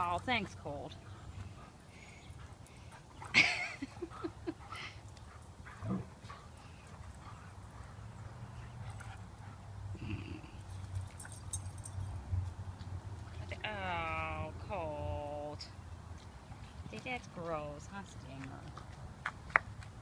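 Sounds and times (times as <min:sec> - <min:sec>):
dogs play-fighting: 0:00.9 - 0:13.3.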